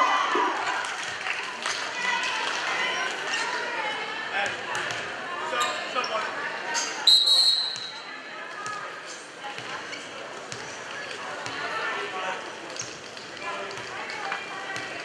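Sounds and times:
crowd and players chattering: 0:00.0 - 0:15.0
referee's whistle blast: 0:07.1 - 0:08.0.

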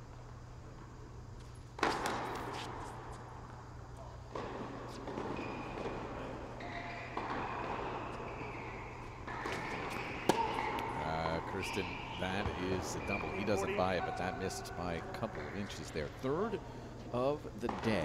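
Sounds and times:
tennis racket striking ball: 0:09.2 - 0:10.8.

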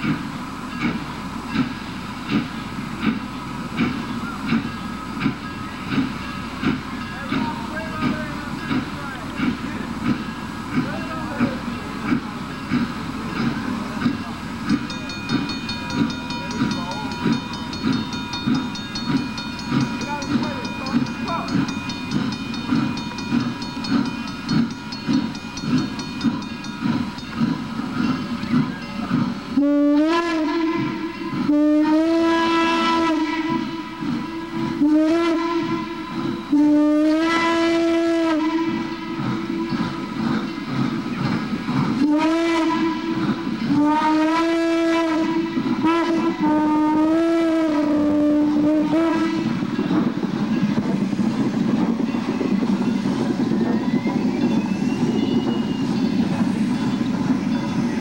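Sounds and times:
steam locomotive exhaust beat: 0:00.0 - 0:58.0
steam whistle blasts: 0:29.5 - 0:40.2, 0:42.0 - 0:49.7.

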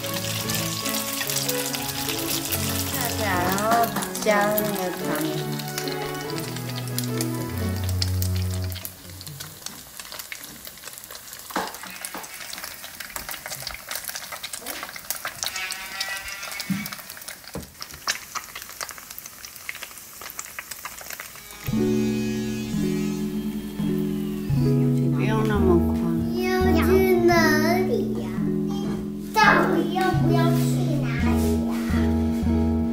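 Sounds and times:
background music: 0:00.0 - 0:09.0, 0:21.4 - 0:32.9
food sizzling in oil: 0:00.0 - 0:32.9.

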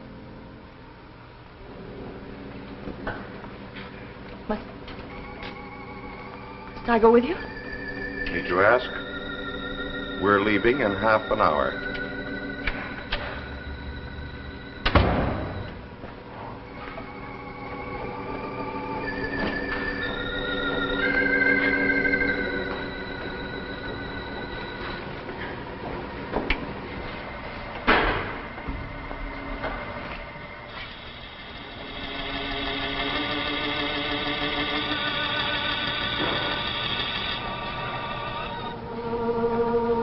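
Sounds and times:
organ chords: 0:01.6 - 0:40.0
sharp bang: 0:14.8 - 0:15.7.

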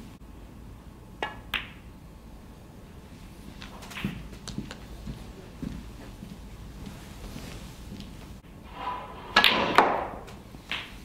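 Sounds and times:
snooker balls clicking: 0:01.2 - 0:01.9, 0:03.6 - 0:05.1, 0:09.4 - 0:11.0.

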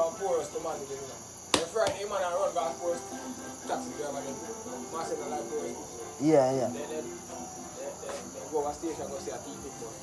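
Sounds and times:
crickets trilling: 0:00.0 - 0:10.0
faint voices talking: 0:00.0 - 0:10.0.

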